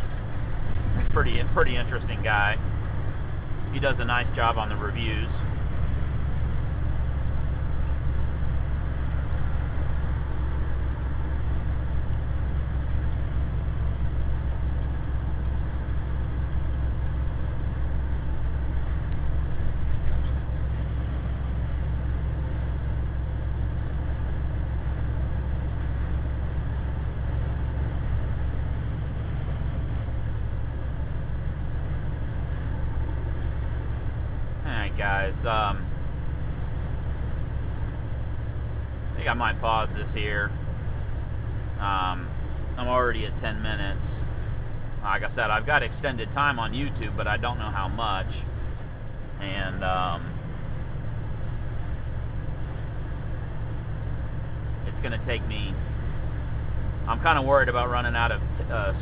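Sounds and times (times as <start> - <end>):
road and tyre noise: 0.0 - 59.0
truck engine drone: 0.0 - 59.0.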